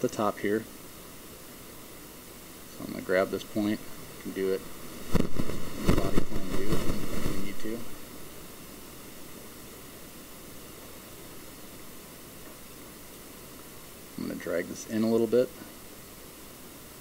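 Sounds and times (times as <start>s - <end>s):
steady low hiss: 0.0s - 17.0s
muffled voices: 5.2s - 7.9s.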